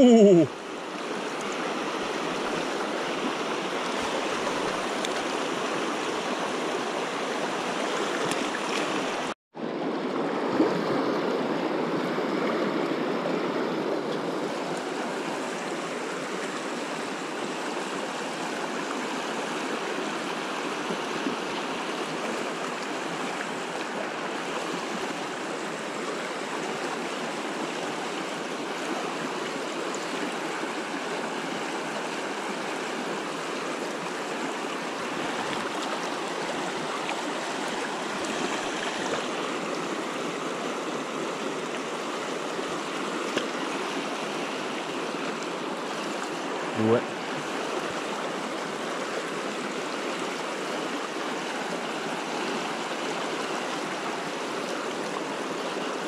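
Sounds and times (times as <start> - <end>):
river water rushing: 0.0 - 56.0.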